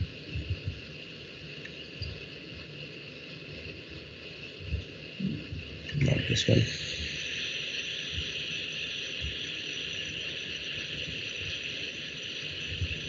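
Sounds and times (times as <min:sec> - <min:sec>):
steady background hiss: 0:00.0 - 0:13.0.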